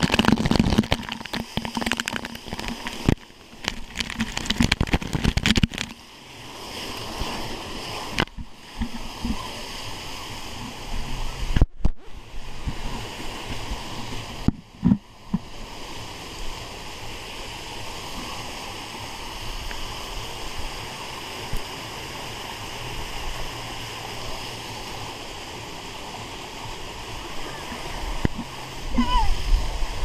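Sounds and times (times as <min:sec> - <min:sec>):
water rushing down a slide: 0:00.0 - 0:30.0.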